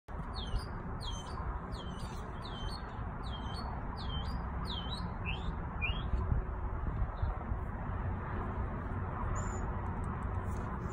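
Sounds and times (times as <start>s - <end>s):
songbird whistling notes: 0.3s - 6.1s.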